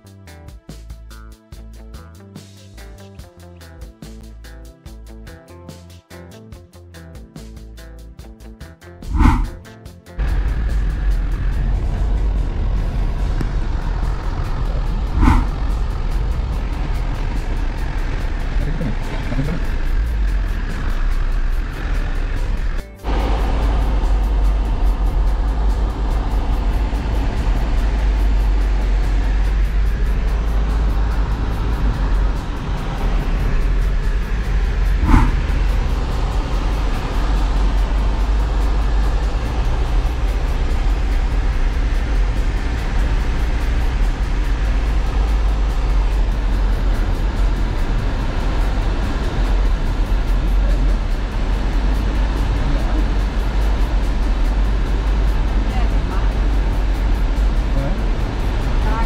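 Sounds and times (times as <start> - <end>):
road and wind noise in car: 9.1 - 9.6, 10.2 - 59.0
deep engine rumble: 9.1 - 59.0.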